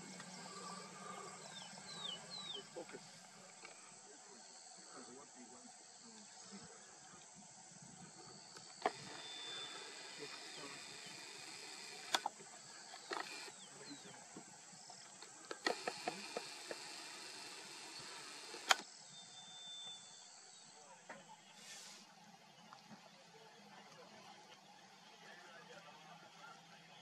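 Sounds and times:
steady high hiss: 0:00.0 - 0:22.2
sharp clicks: 0:08.5 - 0:13.7, 0:15.2 - 0:18.9.

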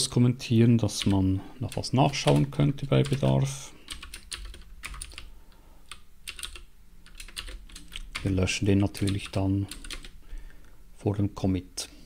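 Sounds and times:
keyboard typing: 0:01.0 - 0:10.2.

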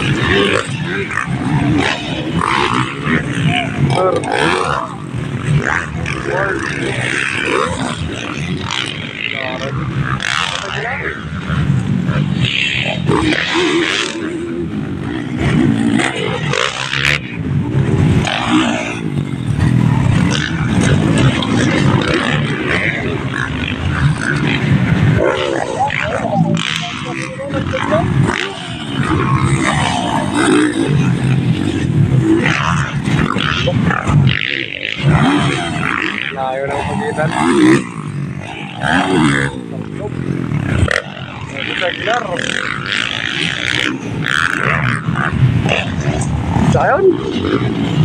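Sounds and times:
dirt bike engines revving: 0:00.0 - 0:48.0
spectators' voices: 0:00.0 - 0:48.0.

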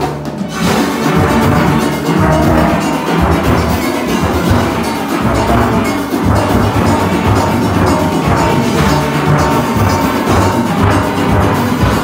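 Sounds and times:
steel orchestra playing: 0:00.0 - 0:12.0.

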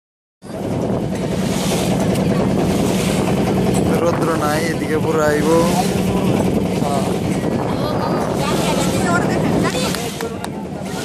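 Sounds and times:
boat engine humming: 0:00.4 - 0:11.0
wind on microphone: 0:00.4 - 0:11.0.

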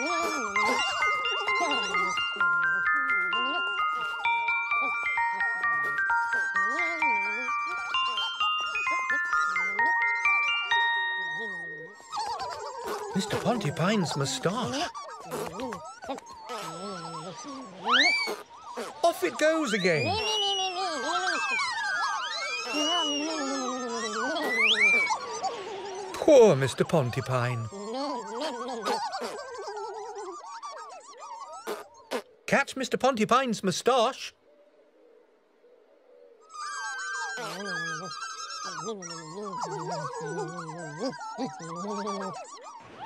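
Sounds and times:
puppet characters chattering: 0:00.0 - 0:30.1, 0:37.3 - 0:42.5
squeaky voices babbling: 0:00.0 - 0:34.4, 0:36.5 - 0:42.8
whistle-like glides: 0:21.6 - 0:25.2.

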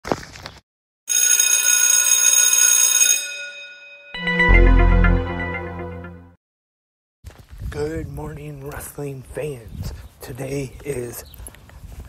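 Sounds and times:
metal bell ringing: 0:02.9 - 0:04.4.

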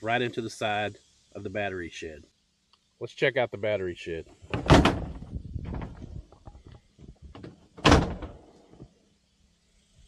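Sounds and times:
shed door clicks and rattles: 0:04.5 - 0:06.0, 0:07.4 - 0:08.4
door thud swinging open: 0:04.5 - 0:06.1, 0:07.3 - 0:08.4.

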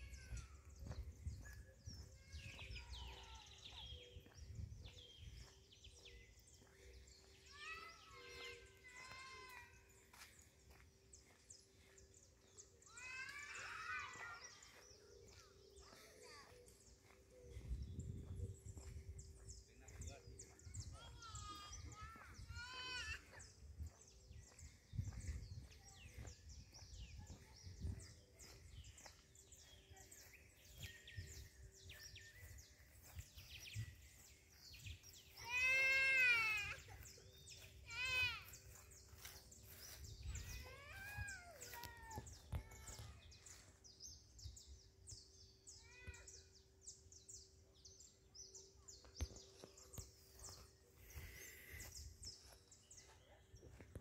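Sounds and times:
high drawn-out wailing calls: 0:35.2 - 0:43.1.

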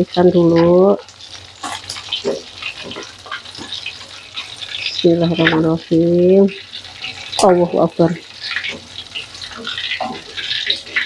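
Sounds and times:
fish sizzling in hot oil: 0:00.0 - 0:11.0
metal spoon scraping wok: 0:01.5 - 0:05.7, 0:06.6 - 0:11.0.

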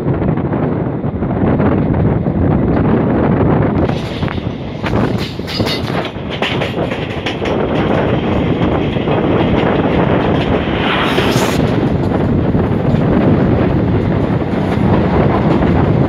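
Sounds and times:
clickety-clack over rail joints: 0:00.0 - 0:10.8, 0:11.8 - 0:16.0
passing locomotive rush: 0:00.0 - 0:16.0
train wheels rumbling: 0:00.0 - 0:16.0.

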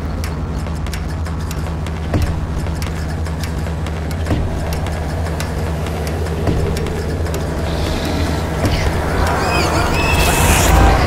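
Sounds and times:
crackling ticks: 0:00.0 - 0:10.8
low rumbling drone: 0:00.0 - 0:11.0
dull hits: 0:01.9 - 0:09.4.

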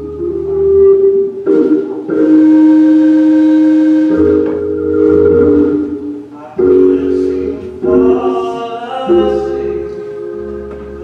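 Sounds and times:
organ playing held chords: 0:00.0 - 0:11.0.

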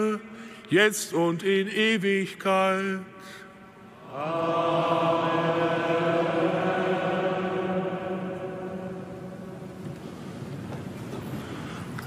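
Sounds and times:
choir holding a note in a church: 0:00.0 - 0:10.6.

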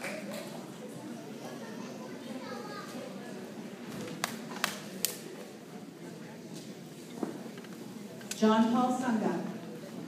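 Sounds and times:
murmur of people in a room: 0:00.0 - 0:10.0.

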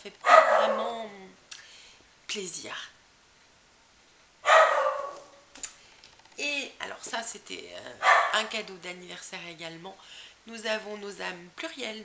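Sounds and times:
small dog barking: 0:00.2 - 0:01.0, 0:04.4 - 0:05.5, 0:08.0 - 0:08.5.

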